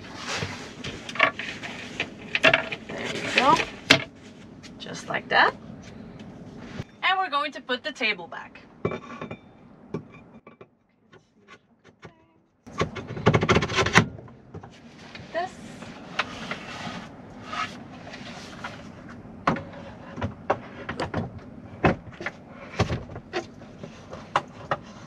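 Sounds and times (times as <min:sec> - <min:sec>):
metal rattling and knocking: 0:00.9 - 0:04.2.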